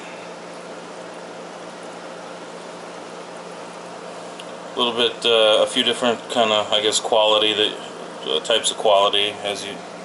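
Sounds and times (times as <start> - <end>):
bubbling sponge filters: 0.0 - 10.0
low steady hum: 0.0 - 10.0.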